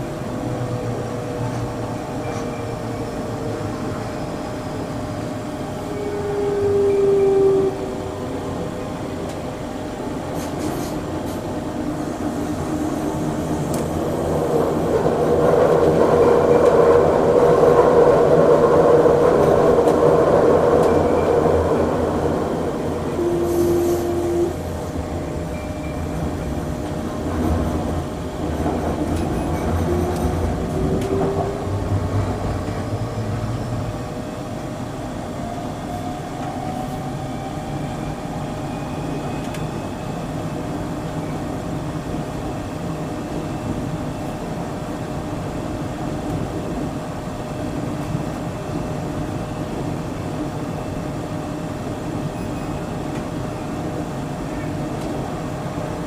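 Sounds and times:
electric train rolling rumble: 0.0s - 56.0s.

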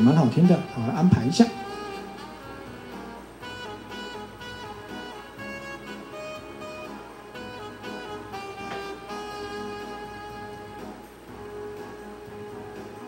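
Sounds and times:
instrumental backing music: 0.0s - 13.0s.

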